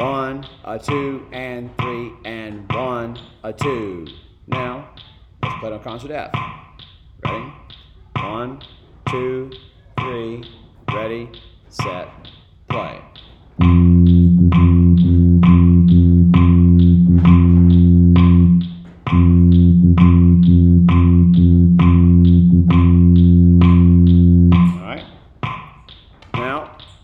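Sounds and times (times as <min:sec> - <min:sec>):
metronome clicks: 0:00.0 - 0:27.0
baritone horn long low note: 0:13.6 - 0:24.8.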